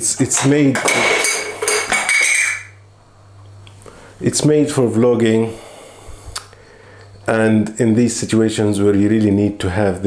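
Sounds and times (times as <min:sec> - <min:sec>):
hard objects clinking on table: 0:00.4 - 0:02.7.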